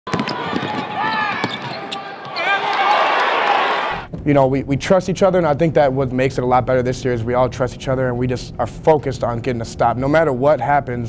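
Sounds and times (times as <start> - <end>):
basketball dribbling: 0.1 - 2.4
sneakers squeaking on hardwood: 0.1 - 3.0
crowd noise: 0.1 - 4.1.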